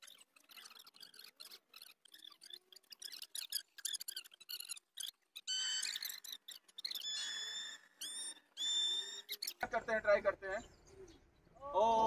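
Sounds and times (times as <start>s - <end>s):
bird whistling: 5.4s - 9.6s.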